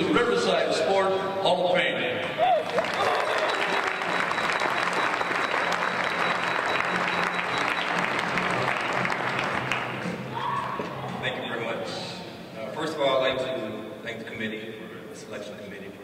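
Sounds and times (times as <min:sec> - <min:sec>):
audience applauding: 0:02.5 - 0:10.2.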